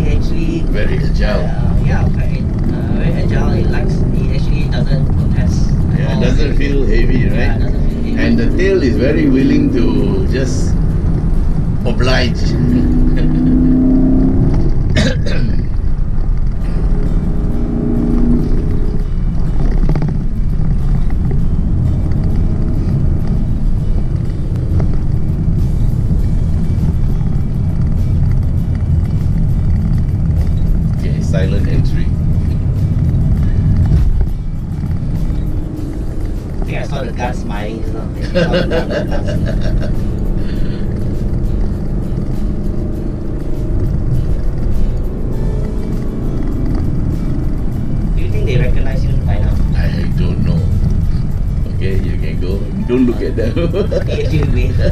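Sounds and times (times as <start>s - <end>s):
car engine running hard: 0.0s - 54.9s
road noise: 0.0s - 54.9s.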